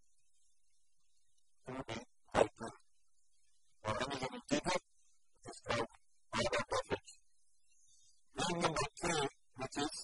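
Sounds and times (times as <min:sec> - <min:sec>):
lecturer talking: 0:03.8 - 0:07.2, 0:08.4 - 0:10.0.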